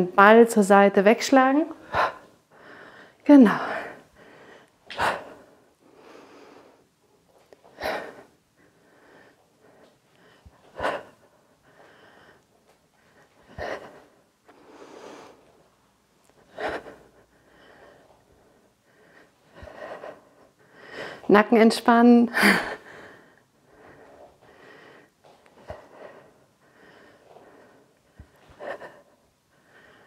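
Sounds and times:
woman breathing hard: 1.8 - 21.3, 22.3 - 30.0.

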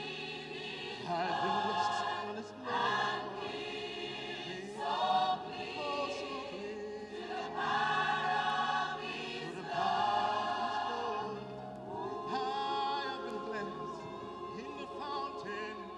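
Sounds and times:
choir singing a hymn: 0.0 - 15.9.

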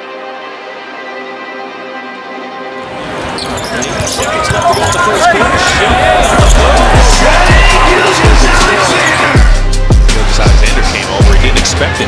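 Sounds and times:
background music: 0.0 - 12.0
arena crowd noise: 2.8 - 12.0.

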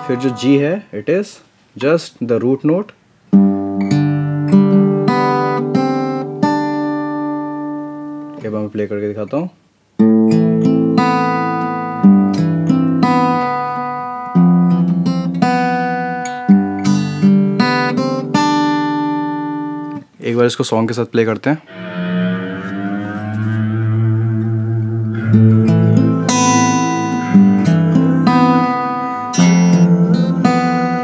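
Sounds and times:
fingerpicked acoustic guitar: 3.3 - 8.5, 10.0 - 20.2, 24.9 - 31.0.

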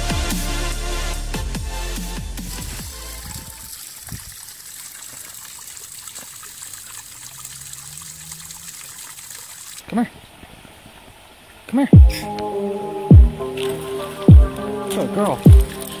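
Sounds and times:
electronic music with bass hits: 0.0 - 3.5, 12.0 - 16.0
small waterfall trickling: 2.5 - 12.5, 13.3 - 16.0.

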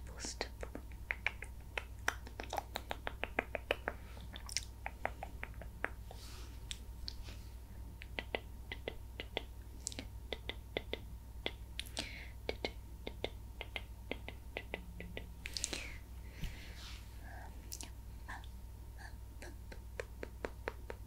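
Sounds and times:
wet tongue and lip clicks: 0.2 - 6.0, 8.0 - 15.9, 17.7 - 17.9.

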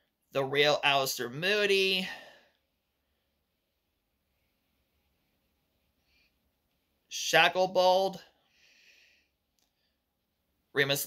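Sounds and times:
man speaking: 0.3 - 2.4, 7.1 - 8.4, 10.7 - 11.0.

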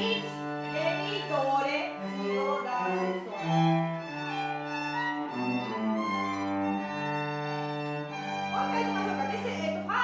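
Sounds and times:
string ensemble playing long notes: 0.0 - 10.0.

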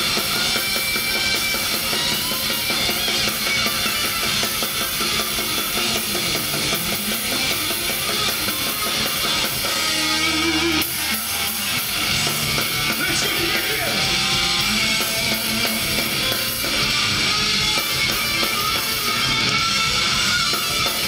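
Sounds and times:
distorted electric guitars: 0.0 - 21.0
fast driving drums: 0.0 - 21.0.

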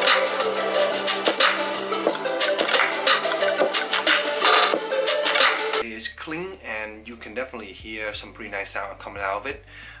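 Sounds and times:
music through small speaker: 0.0 - 5.8.

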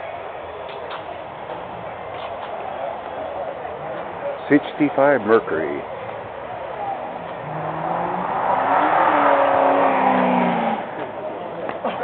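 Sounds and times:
car engine revving: 6.8 - 11.7.

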